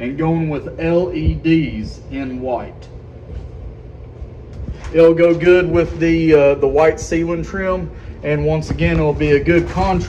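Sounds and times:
faint hum: 0.0 - 10.0
low steady rumbling: 0.0 - 10.0.

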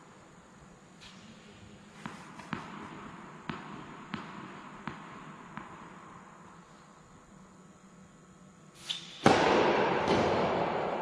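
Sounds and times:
tennis racket hitting ball: 2.0 - 6.2, 8.9 - 11.0
loud thud: 9.2 - 11.0.

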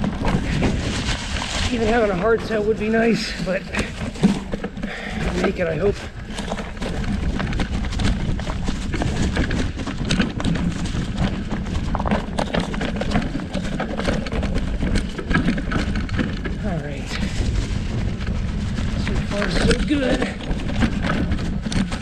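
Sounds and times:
bike rattling: 0.0 - 22.0
tyres crunching over leaves and stones: 0.0 - 22.0
wind on microphone: 0.0 - 22.0.

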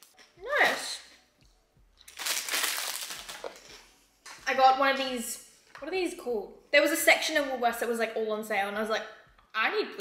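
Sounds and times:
plastic bag rustling: 2.1 - 3.9.

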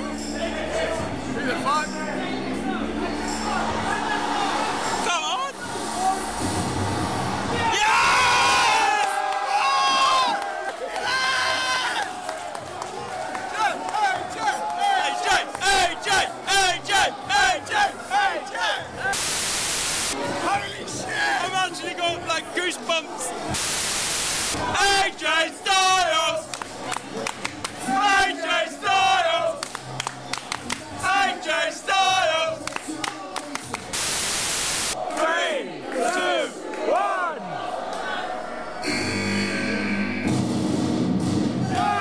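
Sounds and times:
static hiss burst: 19.1 - 20.2, 23.5 - 24.6, 33.9 - 35.0
crowd shouting rhythmic chant: 27.8 - 29.7, 30.8 - 33.0, 35.0 - 38.9.

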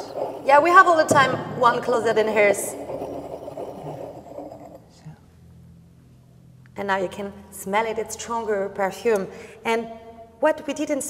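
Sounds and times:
glass scraping on wood: 0.0 - 4.9.

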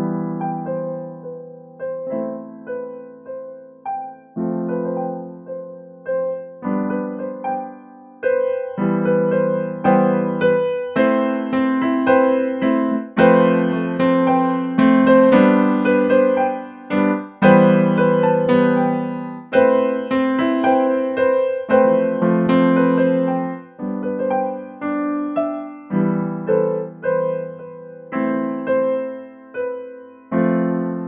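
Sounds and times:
electronic keyboard piano chords: 0.0 - 31.0.

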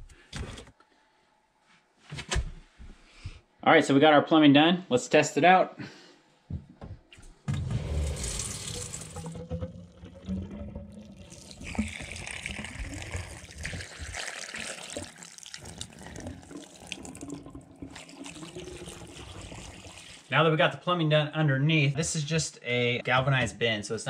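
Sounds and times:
water pouring from drain pipe: 7.5 - 20.4.

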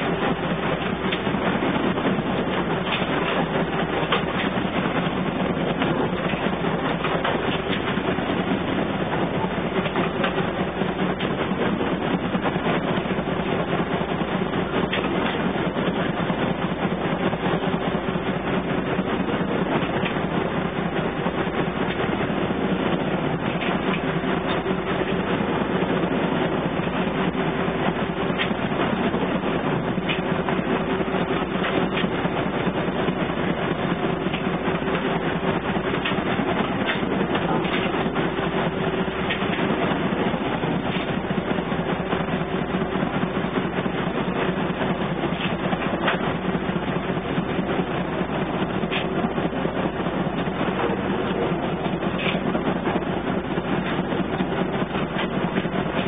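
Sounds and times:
diesel engine running steadily: 0.0 - 56.0.

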